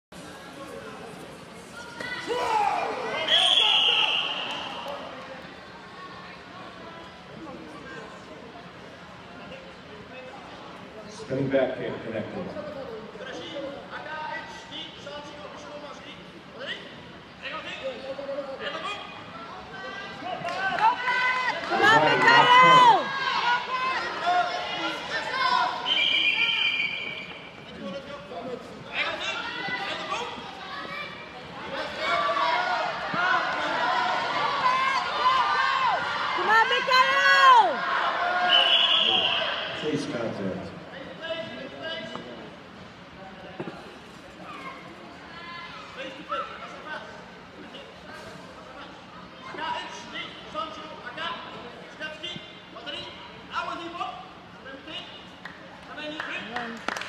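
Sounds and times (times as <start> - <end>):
people shouting: 2.0 - 4.8, 20.6 - 26.9, 31.7 - 39.8
loud drawn-out yells: 2.1 - 4.8, 31.7 - 39.8.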